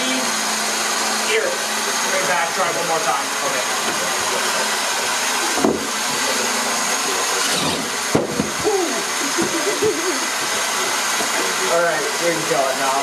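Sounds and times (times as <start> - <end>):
electric motors whirring: 0.0 - 13.0
sharp knocks: 8.1 - 8.6.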